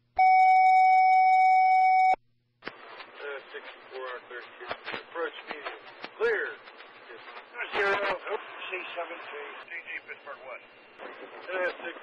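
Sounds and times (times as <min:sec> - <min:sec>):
radio noise burst: 0:02.6 - 0:12.0
voice over tinny radio: 0:03.0 - 0:10.6, 0:11.3 - 0:12.0.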